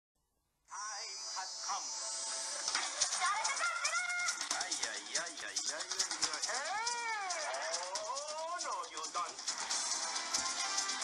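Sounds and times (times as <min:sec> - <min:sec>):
sitcom music: 0:00.7 - 0:11.0.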